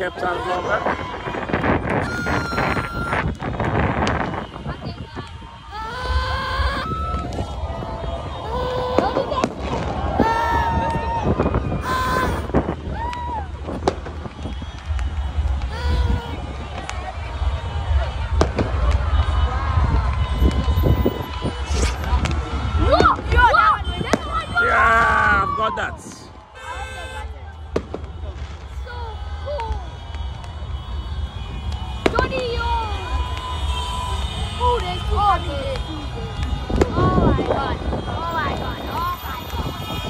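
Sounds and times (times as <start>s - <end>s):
crowd voices: 0.0s - 40.0s
fireworks bangs: 0.0s - 40.0s
firework bang: 8.5s - 17.1s, 17.9s - 19.4s.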